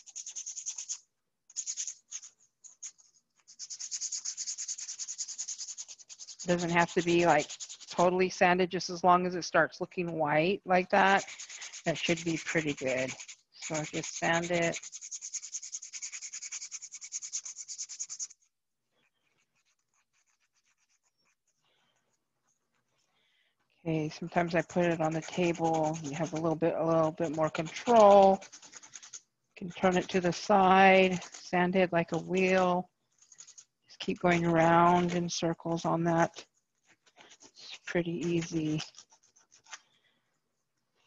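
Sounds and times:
sandpaper rubbing by hand: 0.0 - 8.2, 10.9 - 21.6, 24.3 - 29.2, 29.8 - 31.5, 36.4 - 39.8.

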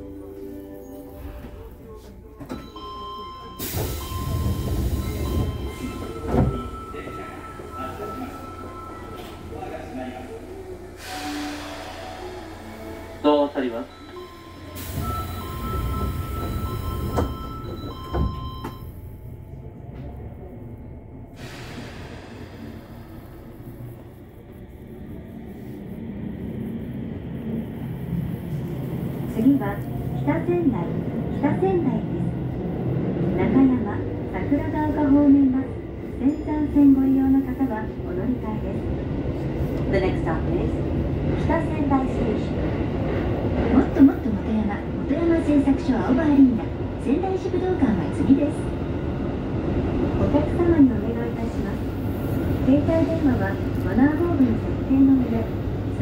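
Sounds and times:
train car hum: 0.0 - 56.0
train doors thumping shut: 3.6 - 6.8, 14.8 - 18.8.

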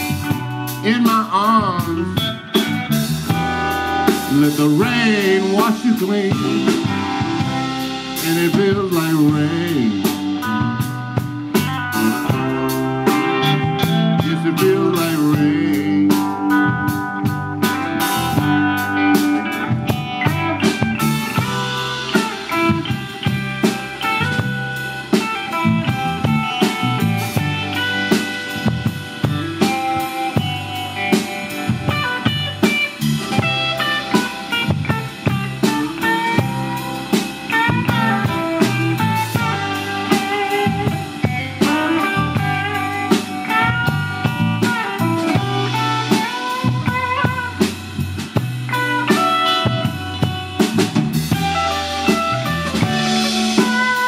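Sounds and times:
drum kit steady beat: 0.0 - 54.0
electric bass: 0.0 - 54.0
electric guitars: 0.0 - 54.0.

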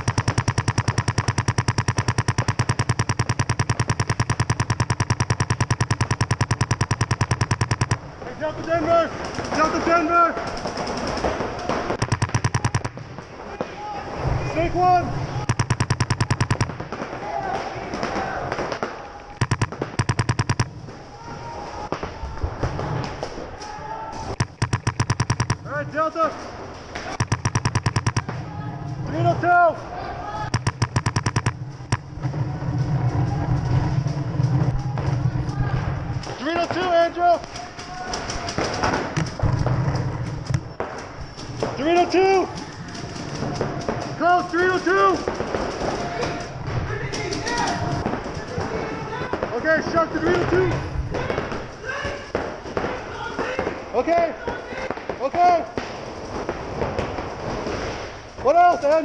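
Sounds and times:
paintball markers firing: 0.0 - 8.1, 9.3 - 13.1, 15.4 - 17.0, 18.1 - 20.8, 24.3 - 25.8, 27.0 - 28.4, 30.5 - 32.2.

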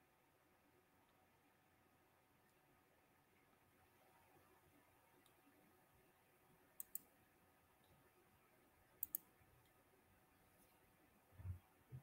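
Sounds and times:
computer mouse clicking: 6.8 - 7.1, 9.0 - 9.8.

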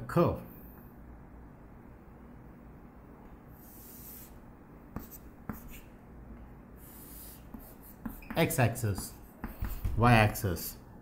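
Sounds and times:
chalk scratching on chalkboard: 3.6 - 6.0, 6.8 - 10.0
chalk tapping on chalkboard: 3.8 - 5.9, 6.9 - 10.0.

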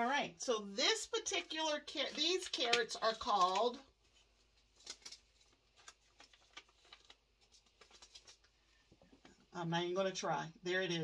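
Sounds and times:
paper seed packet crinkling: 1.4 - 8.8.

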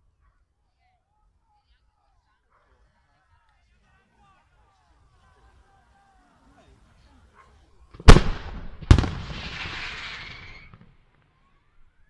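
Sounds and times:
firework bangs: 8.0 - 11.1
firework hissing tail: 8.9 - 10.8.

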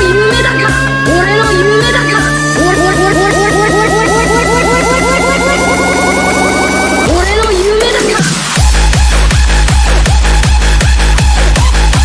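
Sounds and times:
held synth tones: 0.0 - 7.9
rising synth sweep: 0.0 - 8.9.

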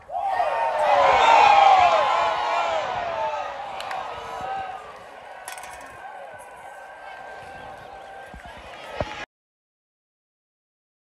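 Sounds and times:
stadium crowd cheering: 0.0 - 9.3
scattered voices and chatter: 2.7 - 9.3.

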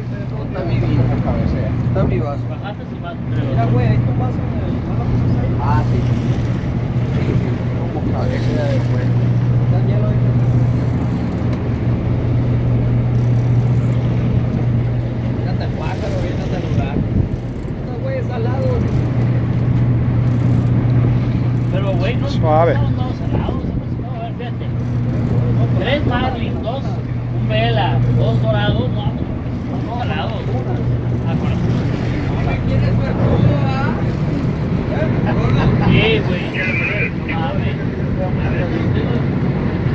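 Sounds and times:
boat engine droning: 0.0 - 39.9
scattered voices: 21.6 - 39.3.

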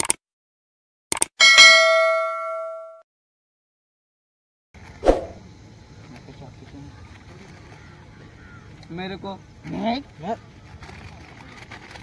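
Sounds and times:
bell ding: 1.4 - 3.0.

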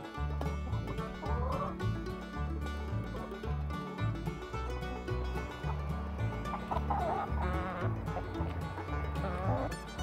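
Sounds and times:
background music: 0.0 - 10.0
hens calling: 0.6 - 3.6, 4.7 - 10.0.

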